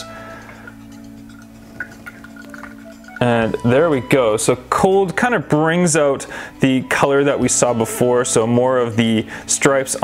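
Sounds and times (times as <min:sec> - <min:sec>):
water drips and ice clinks: 0:00.0 - 0:06.2
soft background music: 0:00.0 - 0:10.0.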